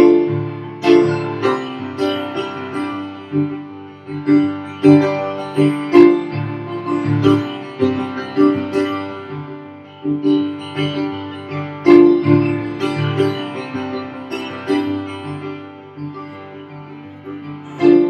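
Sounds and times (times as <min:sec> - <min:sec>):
solo piano: 0:00.0 - 0:18.0.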